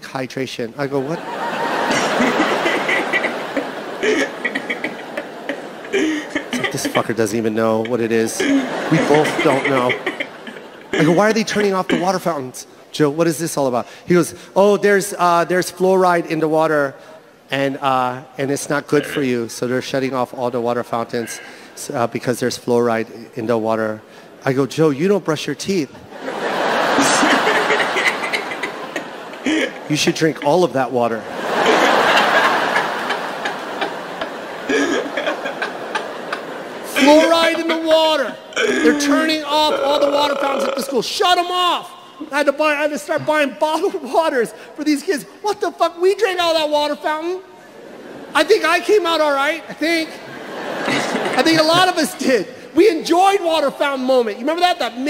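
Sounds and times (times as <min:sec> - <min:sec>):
audience laughter: 0:00.9 - 0:12.3, 0:26.1 - 0:38.5, 0:50.0 - 0:52.3
man snickering: 0:01.9 - 0:12.2, 0:27.0 - 0:29.9, 0:32.4 - 0:37.8.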